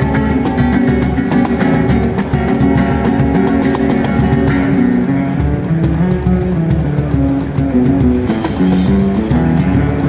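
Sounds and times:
hand strikes on a cajon: 0:00.0 - 0:10.0
nylon-string guitar picking: 0:00.0 - 0:10.0.

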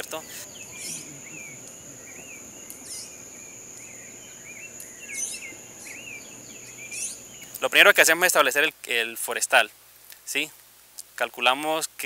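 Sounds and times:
bird chirping: 0:00.0 - 0:08.3
insect buzzing: 0:00.0 - 0:08.3.

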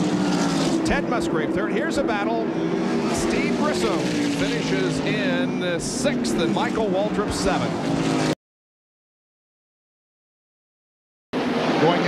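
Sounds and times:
race car engines droning: 0:00.0 - 0:08.4, 0:11.4 - 0:12.0
commentator talking: 0:00.8 - 0:07.8.

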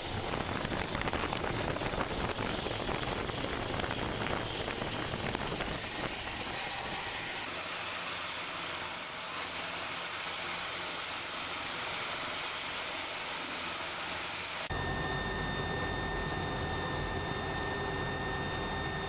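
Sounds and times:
helicopter turbines and rotor: 0:00.0 - 0:19.0
high whining hum: 0:00.0 - 0:19.0.

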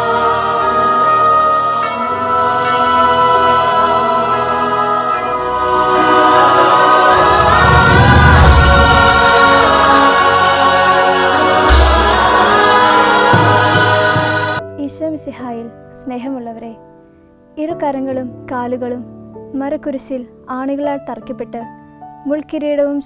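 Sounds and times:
choir singing with accompaniment: 0:00.0 - 0:14.7
deep low booms: 0:07.1 - 0:10.6.

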